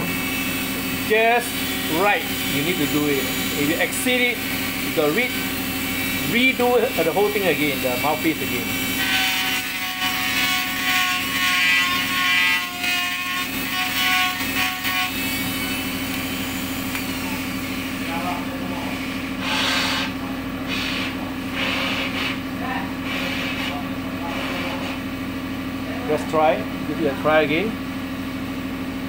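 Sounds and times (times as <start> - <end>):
rotary tool grinding whine: 0.0 - 25.1
steady motor hum: 0.0 - 29.0.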